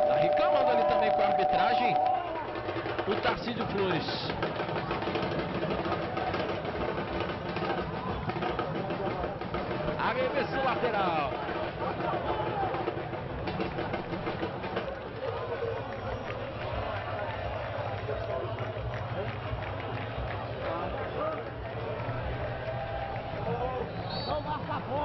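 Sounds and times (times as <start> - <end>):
players shouting: 0.0 - 2.7
scattered crowd voices: 0.0 - 25.0.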